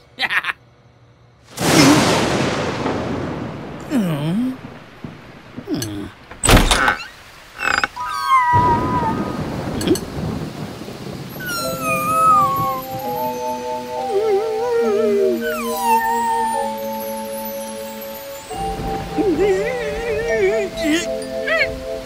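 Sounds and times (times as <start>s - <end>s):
rain hissing: 1.5s - 22.0s
gentle music with sliding tones: 11.4s - 22.0s.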